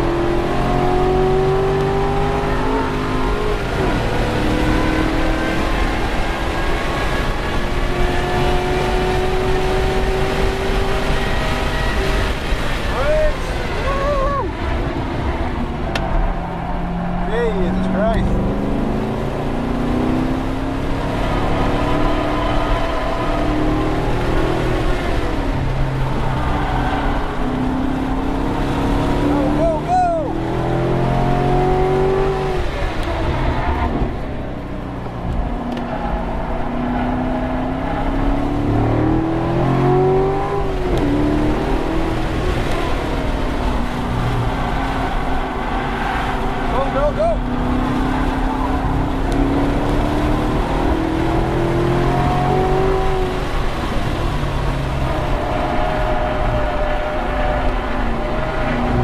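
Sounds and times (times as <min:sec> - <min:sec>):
car engine revving from inside: 0:30.4 - 0:34.2, 0:47.4 - 0:56.8.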